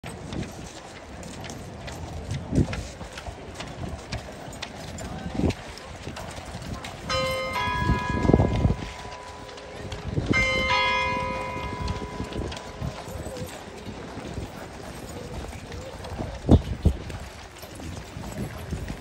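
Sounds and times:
horse hooves clip-clopping: 0.0 - 19.0
bell striking: 7.1 - 13.6.

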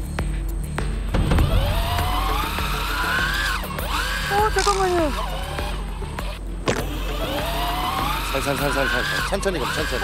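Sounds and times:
background music: 0.0 - 10.0
fishing reel motor whining: 1.4 - 10.0.

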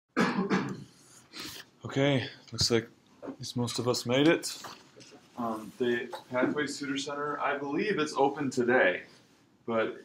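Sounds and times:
person coughing: 0.2 - 1.0.

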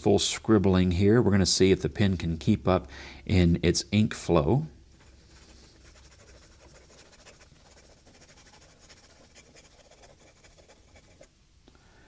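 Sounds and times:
fountain pen scratching on paper: 5.0 - 11.3.

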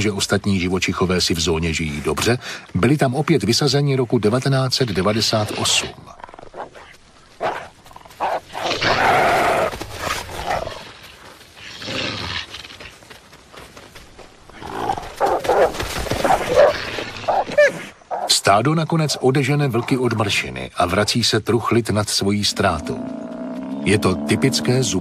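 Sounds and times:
wolves vocalizing: 14.6 - 18.4.

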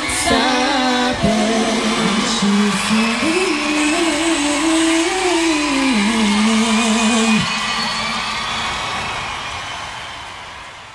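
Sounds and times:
crowd noise: 0.0 - 10.9.

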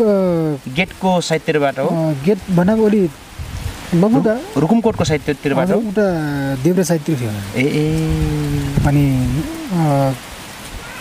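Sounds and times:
man talking: 0.0 - 3.2, 3.9 - 10.2.

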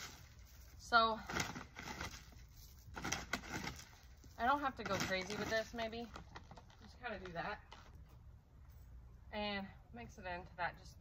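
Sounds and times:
bag of fertilizer rustling: 0.0 - 7.5.

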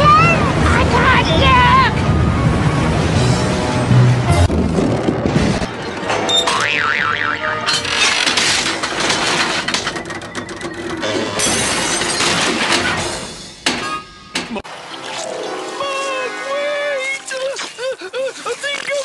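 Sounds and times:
background music: 0.0 - 18.4
clattering crashing noise: 7.7 - 14.6.

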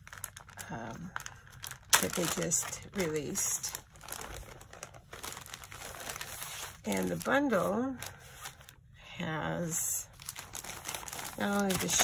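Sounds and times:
plastic bag crinkling: 0.0 - 8.8, 10.0 - 12.0.

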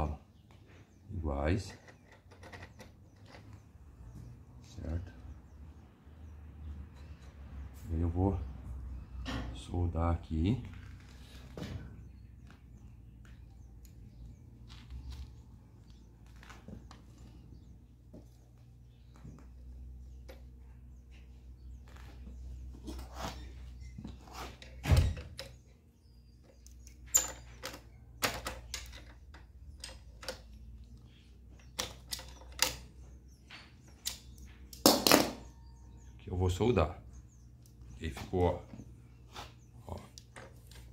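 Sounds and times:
metal parts clicking and knocking: 1.6 - 3.6, 26.4 - 33.0.

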